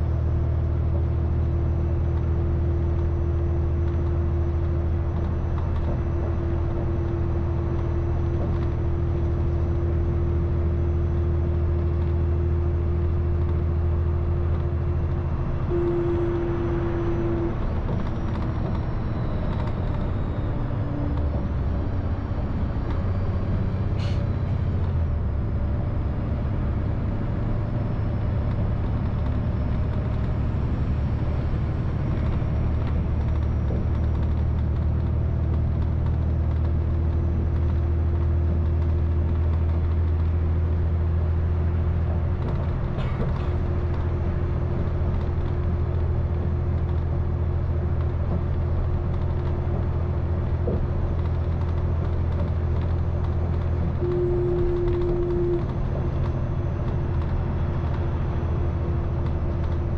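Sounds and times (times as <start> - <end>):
bus engine drone: 0.0 - 59.9
road rumble: 0.0 - 59.9.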